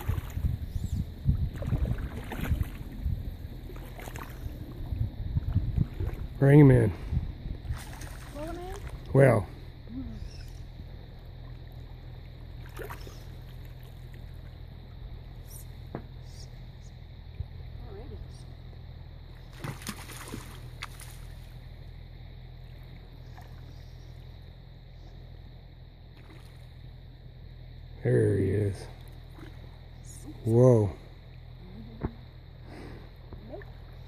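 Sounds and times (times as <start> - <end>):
fish splashing: 19.5 - 21.4.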